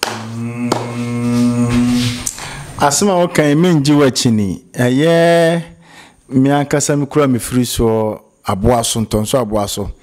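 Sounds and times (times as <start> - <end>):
low droning tone: 0.2 - 2.6.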